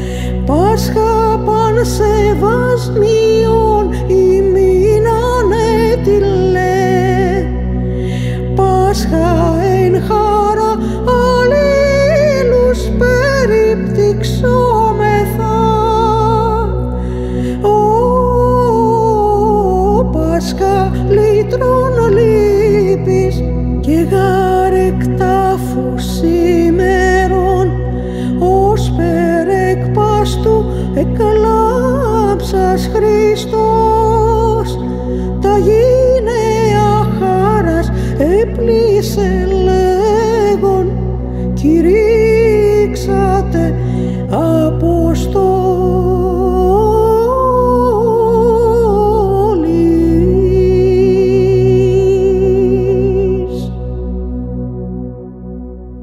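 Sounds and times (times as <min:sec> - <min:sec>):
woman singing melisma: 0:00.0 - 0:07.6, 0:08.2 - 0:16.9, 0:17.5 - 0:53.8
steady low drone: 0:00.0 - 0:56.0.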